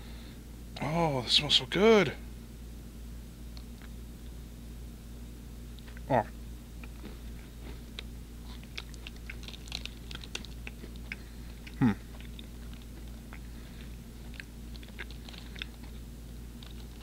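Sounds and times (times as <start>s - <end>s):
person chewing wet clicks: 6.8s - 17.0s
person humming hmm: 11.6s - 12.2s.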